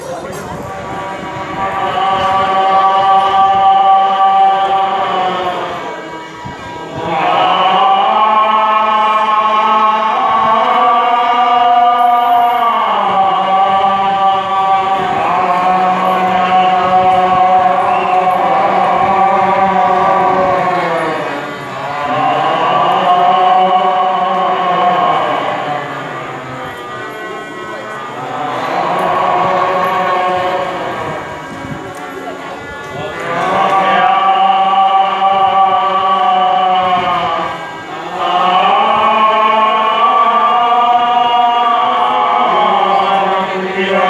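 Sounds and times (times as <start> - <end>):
devotional chanting: 0.0 - 44.0.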